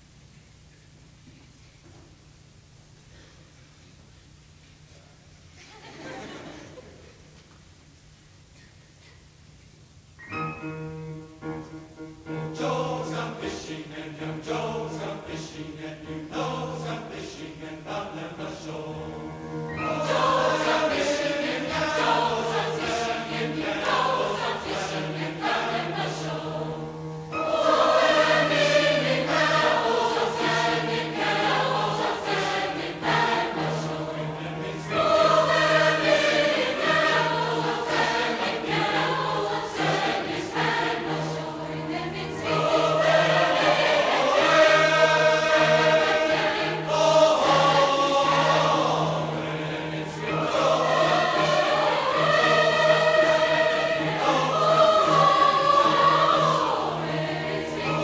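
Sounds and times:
steady low hum: 0:00.0 - 0:58.0
choir singing: 0:11.6 - 0:58.0.

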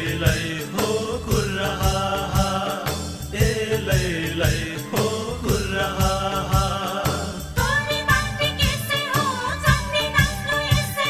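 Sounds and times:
drum and cymbal beat: 0:00.0 - 0:11.0
voices chanting or singing: 0:00.0 - 0:11.0.

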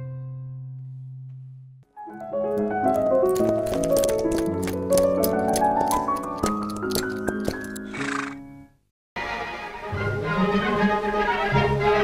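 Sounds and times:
horse whinny: 0:07.8 - 0:08.5.

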